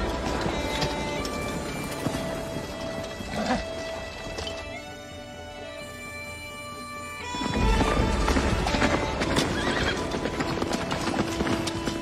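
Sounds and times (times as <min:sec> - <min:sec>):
horses' hooves galloping: 0:00.0 - 0:06.5, 0:07.1 - 0:12.0
orchestral music: 0:00.0 - 0:12.0
horse whinnying: 0:03.2 - 0:03.9, 0:09.3 - 0:10.2.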